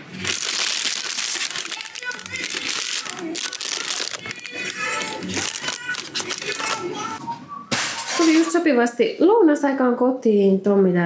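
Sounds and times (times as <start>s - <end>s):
plastic packaging crinkling: 0.0s - 7.2s.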